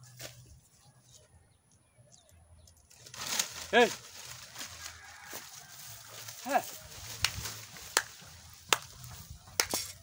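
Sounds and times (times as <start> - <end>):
footsteps on dry grass: 0.0 - 1.2, 2.9 - 10.0.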